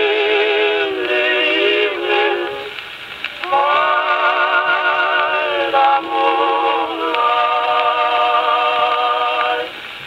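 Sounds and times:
singer with vibrato on old record: 0:00.0 - 0:10.0.

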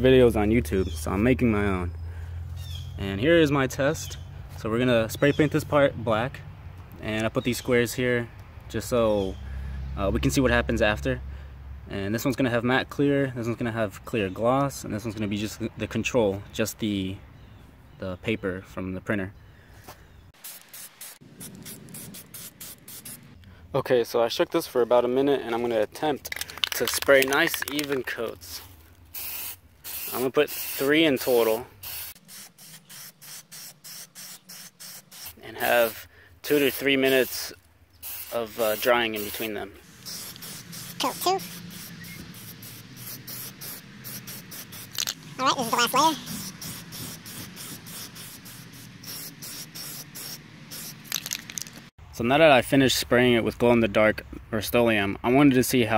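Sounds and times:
spray paint hissing bursts: 0:20.4 - 0:23.4, 0:29.1 - 0:51.6.

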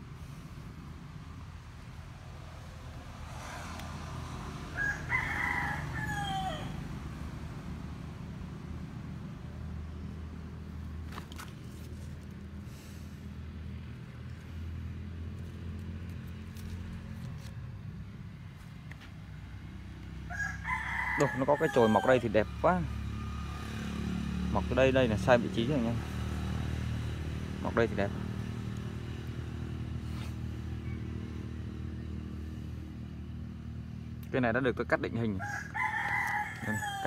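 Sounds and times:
rooster crowing: 0:04.7 - 0:07.0, 0:20.2 - 0:22.4, 0:35.4 - 0:37.0.

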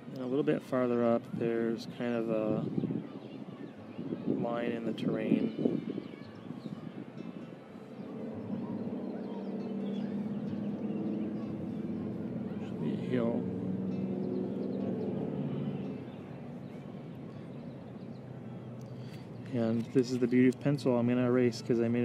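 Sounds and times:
steady motor hum: 0:06.8 - 0:17.5.

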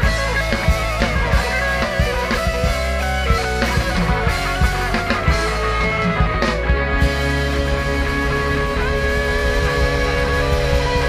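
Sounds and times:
electric guitars sustained notes: 0:00.0 - 0:11.0
live rock band playing: 0:00.0 - 0:11.0.

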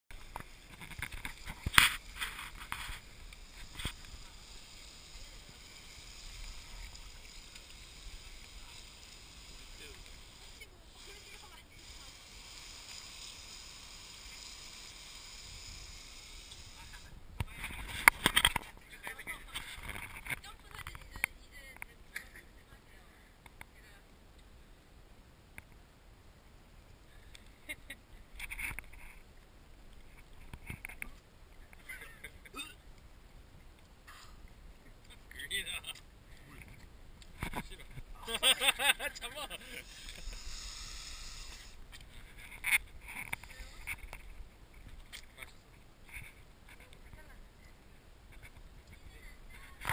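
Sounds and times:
hose nozzle spraying water: 0:00.1 - 0:17.1, 0:39.7 - 0:41.8.

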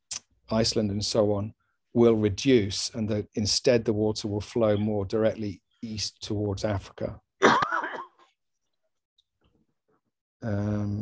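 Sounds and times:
man clearing his throat: 0:07.4 - 0:08.2.

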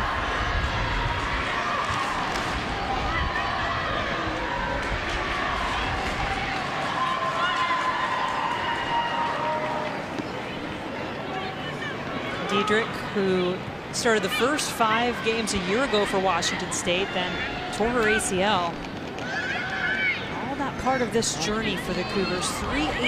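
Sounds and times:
distant voices and shouts: 0:00.0 - 0:23.0
stadium crowd murmur: 0:00.0 - 0:23.0.

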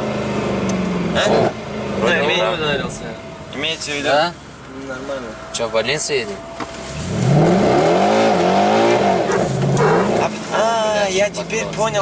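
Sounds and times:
car engine running in cabin: 0:00.0 - 0:12.0.

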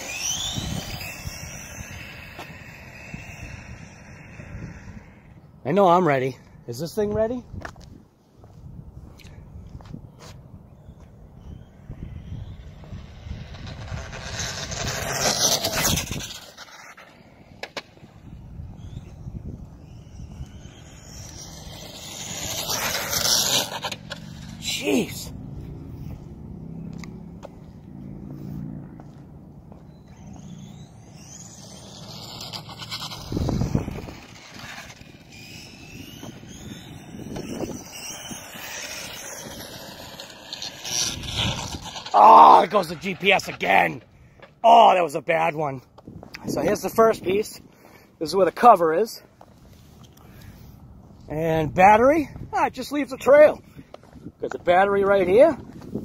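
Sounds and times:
rc car motor whine: 0:00.0 - 0:05.5, 0:11.0 - 0:44.8
wind on microphone: 0:00.0 - 0:05.6, 0:07.0 - 0:23.4, 0:30.2 - 0:44.4, 0:53.5 - 0:56.0.

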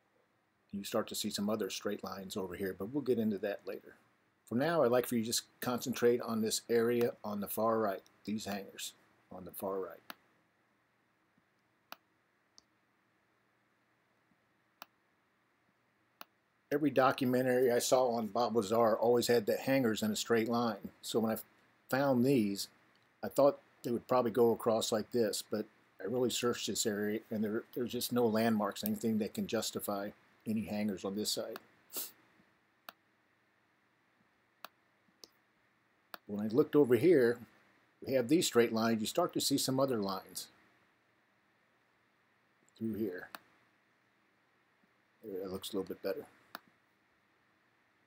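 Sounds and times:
faint sharp clicks: 0:07.0 - 0:07.2, 0:11.5 - 0:12.7, 0:32.8 - 0:33.0, 0:34.6 - 0:35.4, 0:42.6 - 0:43.6.

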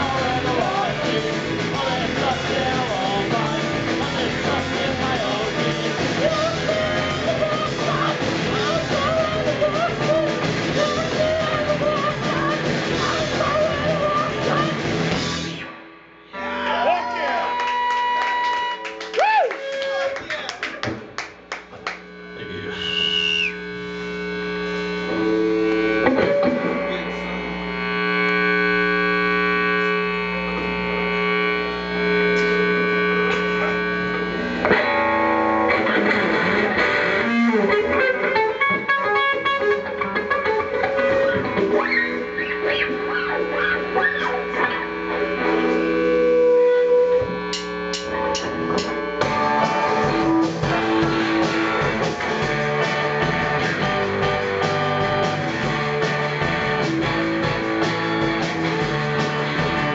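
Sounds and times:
electric guitar: 0:00.0 - 0:59.9
held keyboard chords: 0:23.6 - 0:59.9.

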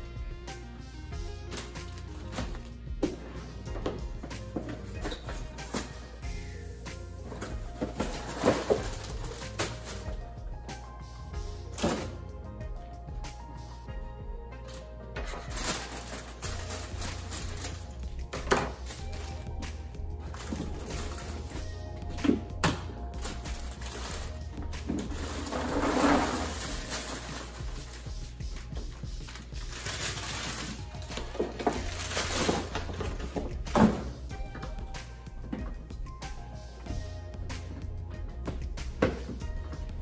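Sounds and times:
background music: 0:00.0 - 0:40.0
plastic bag rustling: 0:01.5 - 0:02.7, 0:07.2 - 0:10.3, 0:14.7 - 0:21.7, 0:23.0 - 0:33.5
plastic canisters clunking: 0:07.2 - 0:10.2.

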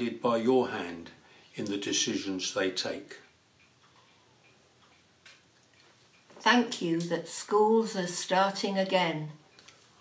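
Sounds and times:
soft ticks: 0:02.5 - 0:10.0.

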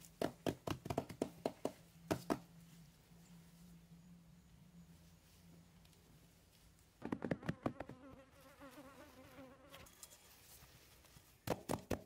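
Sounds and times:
flying insect buzzing: 0:07.3 - 0:10.0.

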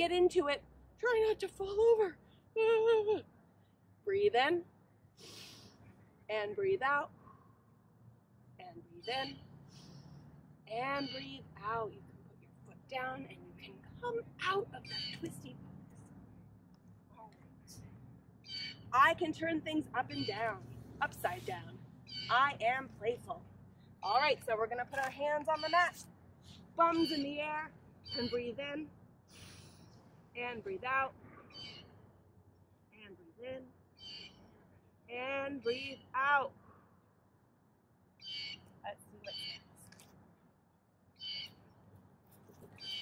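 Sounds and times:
woman reading aloud: 0:00.0 - 0:03.2, 0:04.1 - 0:04.6, 0:06.3 - 0:07.1, 0:08.6 - 0:09.4, 0:10.7 - 0:12.0, 0:12.7 - 0:15.6, 0:19.0 - 0:23.4, 0:24.0 - 0:26.0, 0:26.8 - 0:28.9, 0:30.4 - 0:31.2, 0:33.0 - 0:33.7, 0:35.1 - 0:36.5, 0:38.8 - 0:39.4
high-pitched bird call: 0:10.9 - 0:11.4, 0:14.8 - 0:15.3, 0:18.4 - 0:18.9, 0:22.1 - 0:22.5, 0:26.9 - 0:27.4, 0:28.0 - 0:28.5, 0:34.0 - 0:34.4, 0:39.2 - 0:39.7, 0:41.2 - 0:41.6, 0:42.8 - 0:43.0
soft rustle: 0:41.9 - 0:42.9
faint bird calls: 0:42.7 - 0:43.0.

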